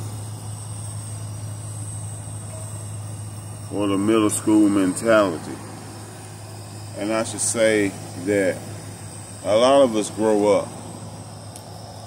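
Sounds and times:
high-pitched whine: 0.0 - 12.0
steady low hum: 0.0 - 12.0.

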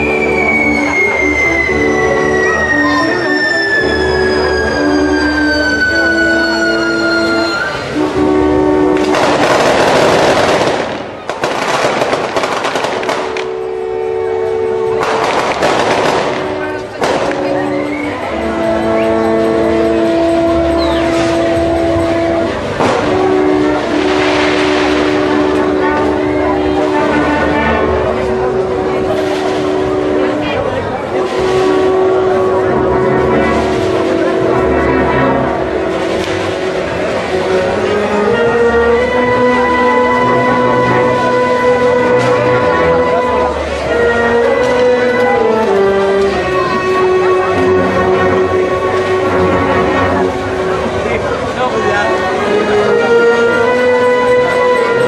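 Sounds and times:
wind band brass chords: 0.0 - 55.0
loud crashes of noise: 8.9 - 13.6, 15.0 - 17.7, 22.5 - 26.6.

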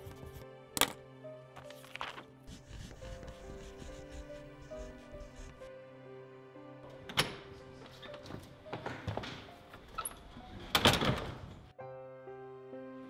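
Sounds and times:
soft background music: 0.0 - 13.0
door thud with rattle: 10.7 - 11.5.

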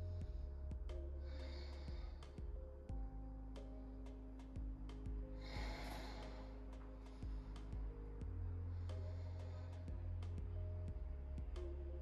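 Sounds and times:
soft music with held tones: 0.0 - 12.0.

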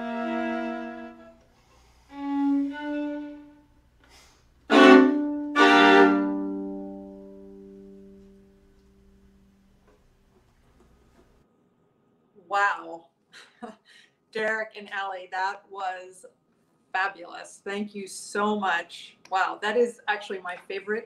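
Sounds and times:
violin and viola playing: 0.0 - 1.5, 2.1 - 3.8, 4.7 - 8.6.

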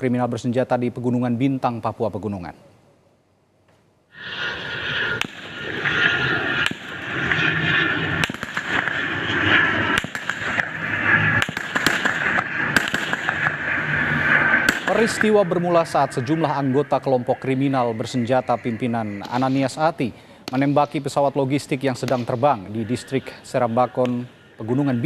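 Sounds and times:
propeller plane droning: 4.1 - 25.0
rapid gunshots: 5.2 - 15.3.

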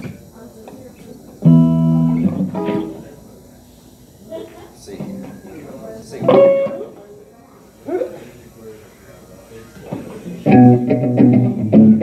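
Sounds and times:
electric guitar chords: 1.4 - 3.2, 6.2 - 6.9, 10.4 - 12.0.

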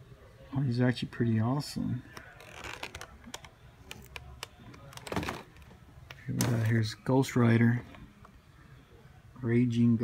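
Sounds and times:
plastic packaging clicking: 2.2 - 6.7.

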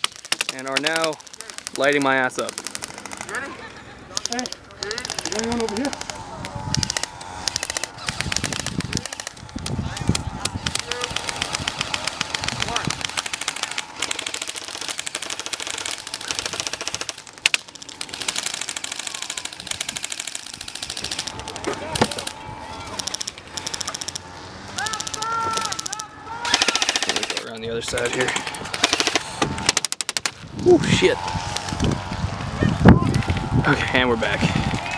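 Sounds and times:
airsoft guns firing bursts: 0.0 - 30.4.

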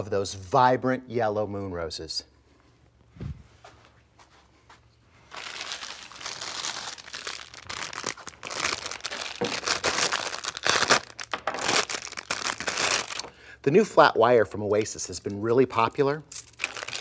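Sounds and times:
plastic packaging crinkling: 5.2 - 13.4, 14.7 - 17.0.

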